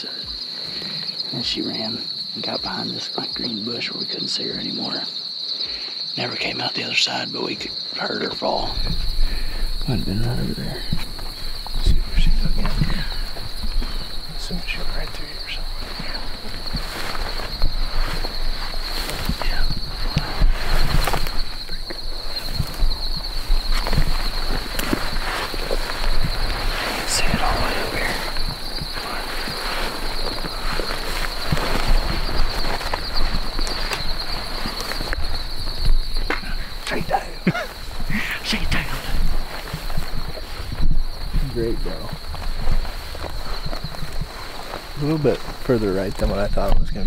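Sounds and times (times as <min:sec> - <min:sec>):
crickets chirping: 0:00.0 - 0:47.0
footsteps through dry grass: 0:08.7 - 0:46.6.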